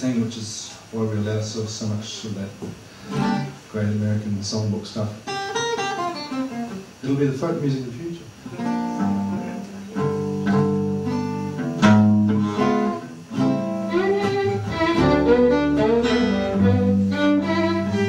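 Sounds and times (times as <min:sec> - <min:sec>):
acoustic guitar: 0:02.2 - 0:07.6, 0:08.3 - 0:18.0
bowed string instrument: 0:08.5 - 0:18.0.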